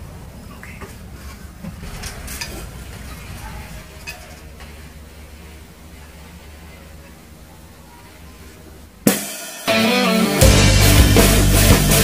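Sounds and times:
drum kit with cymbals: 9.0s - 12.0s
rock backing track: 9.0s - 12.0s
crash cymbal hit: 9.1s - 12.0s
guitar: 9.1s - 12.0s.

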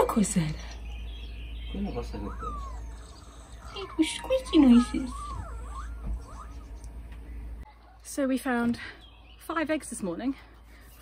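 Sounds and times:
hen clucking: 1.8s - 8.1s
hen call falling in pitch: 2.2s - 6.8s.

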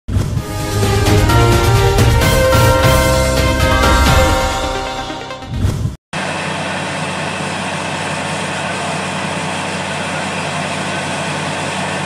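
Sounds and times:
truck engine droning: 0.4s - 5.4s.

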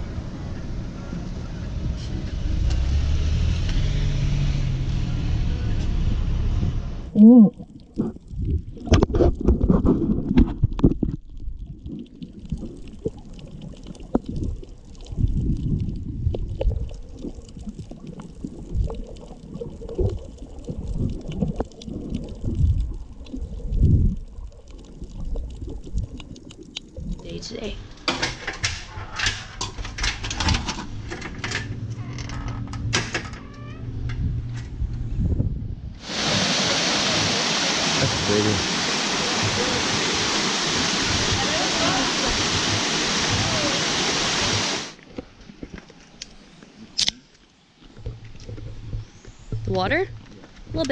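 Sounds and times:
underwater sloshing and bubbling: 7.3s - 50.9s
wind rushing on microphone: 33.8s - 44.9s.

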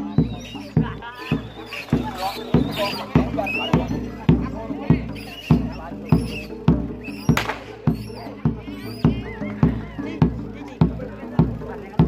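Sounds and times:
drum steady beat: 0.0s - 12.0s.

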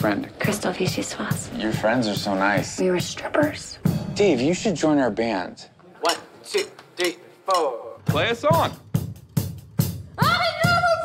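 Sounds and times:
drum kit beat: 0.0s - 4.8s, 6.1s - 11.0s.

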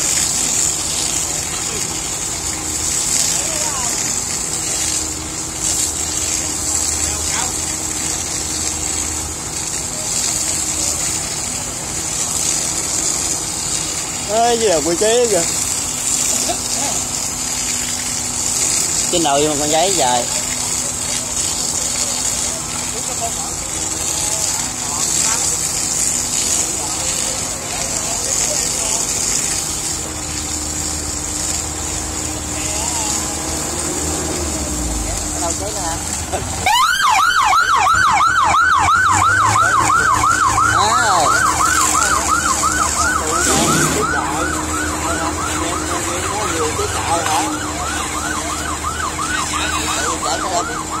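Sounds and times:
fire engine siren wailing: 0.0s - 51.0s
fire hoses spraying water: 0.0s - 51.0s
pump engine running: 0.0s - 51.0s.

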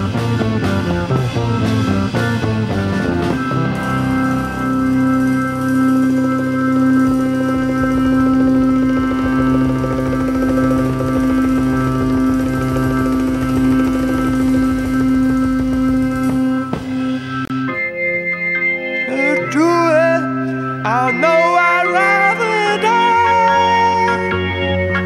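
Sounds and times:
drums and bass rhythm: 0.0s - 17.8s
held keyboard chord: 0.0s - 25.0s
high sustained tone: 0.0s - 25.0s.

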